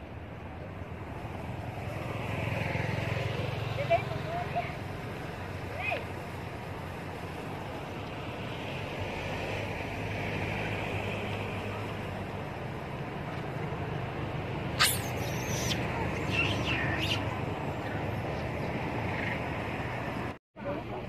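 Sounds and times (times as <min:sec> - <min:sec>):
vehicle engine humming: 0:00.1 - 0:21.0
sharp high squeal: 0:14.8 - 0:17.2.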